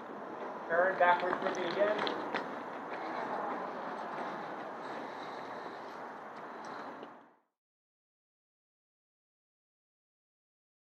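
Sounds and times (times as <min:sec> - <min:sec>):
outdoor background rush: 0:00.0 - 0:07.4.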